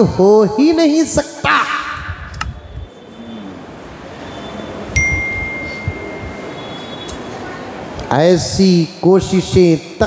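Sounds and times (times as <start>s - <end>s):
small bell ringing tone: 5.0s - 6.8s.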